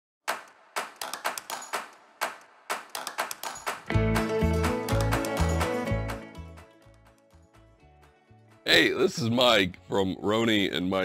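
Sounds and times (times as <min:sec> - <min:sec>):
sharp percussive hits: 0:00.2 - 0:05.8.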